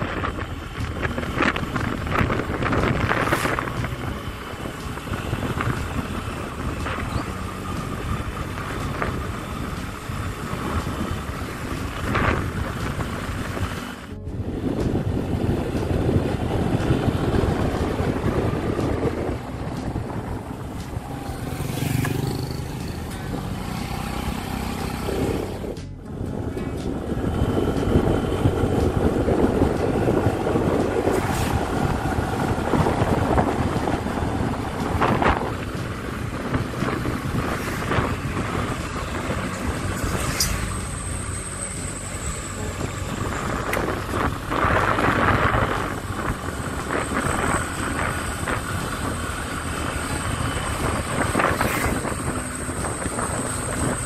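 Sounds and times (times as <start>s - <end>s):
motorcycle engine running: 0.0s - 54.0s
wind rushing over microphone: 0.0s - 54.0s.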